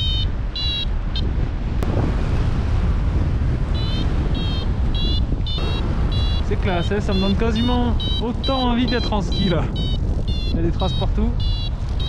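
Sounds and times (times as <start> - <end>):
variometer short high beeps: 0.0 - 1.3, 3.8 - 11.8
wind buffeting microphone: 0.0 - 12.0.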